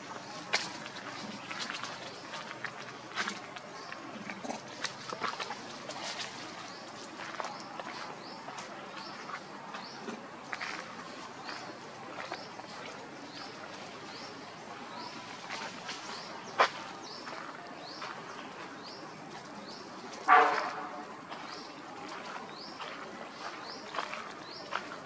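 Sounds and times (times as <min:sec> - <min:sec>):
crackles on a leafy dirt path: 0:00.0 - 0:25.0.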